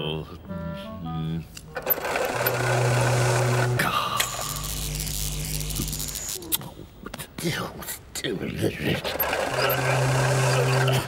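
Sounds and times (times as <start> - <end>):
electrical buzzing: 1.7 - 6.6, 9.1 - 11.0.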